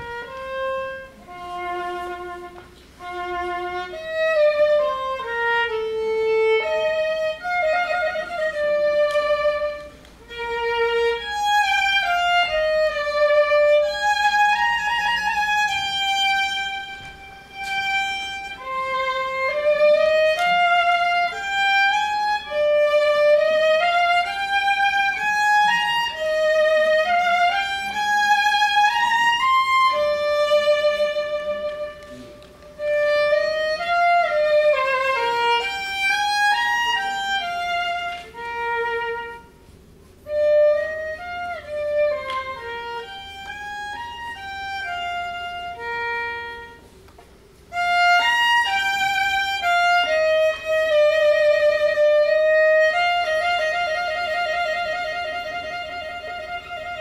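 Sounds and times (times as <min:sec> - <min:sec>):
solo violin melody: 0:00.0 - 0:57.0.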